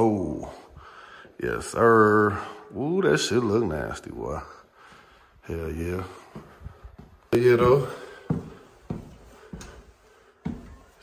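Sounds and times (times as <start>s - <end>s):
footsteps going down stairs: 6.0s - 11.0s.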